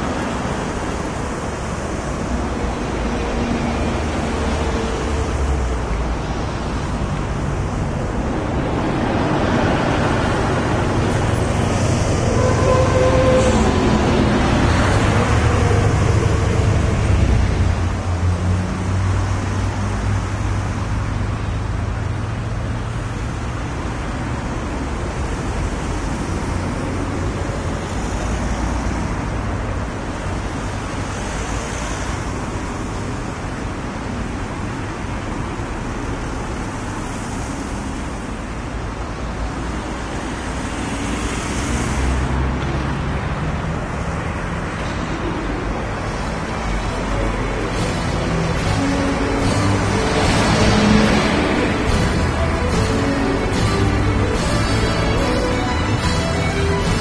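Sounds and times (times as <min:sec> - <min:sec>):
heavy low engine hum: 0:00.0 - 0:41.6, 0:42.4 - 0:57.0
cars passing: 0:00.0 - 0:57.0
motorway traffic rush: 0:00.0 - 0:57.0.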